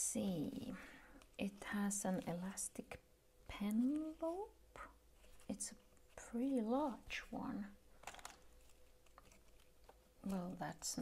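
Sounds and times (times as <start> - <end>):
pen handling clicks and rustles: 8.0 - 11.0.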